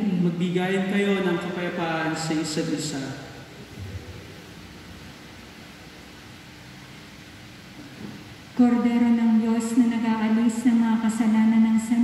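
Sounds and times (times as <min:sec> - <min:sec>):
faint hum: 0:00.0 - 0:12.0
room noise hiss: 0:00.0 - 0:12.0.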